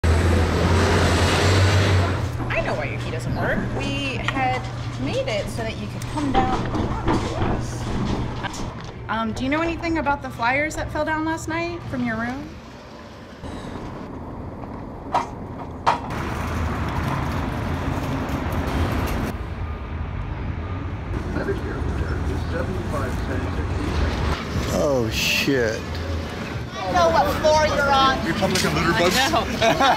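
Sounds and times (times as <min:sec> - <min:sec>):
street traffic rumble: 0:00.0 - 0:29.9.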